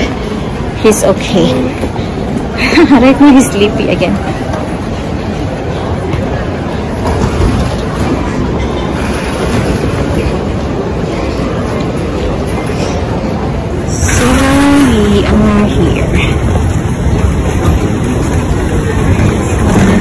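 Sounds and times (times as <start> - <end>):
stroller wheels rumbling: 0.0 - 20.0.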